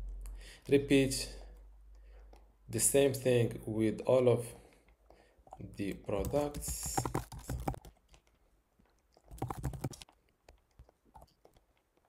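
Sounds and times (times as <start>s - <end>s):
typing on computer keyboard: 5.5s - 8.3s, 9.2s - 11.6s.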